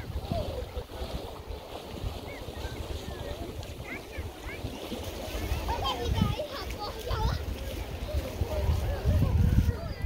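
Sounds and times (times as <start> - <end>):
waves lapping at shore: 0.0 - 10.0
wind buffeting microphone: 0.0 - 10.0.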